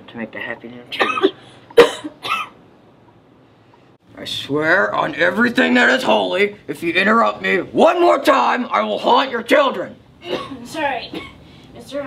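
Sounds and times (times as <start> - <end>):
person coughing: 0.9 - 2.6, 10.2 - 11.4.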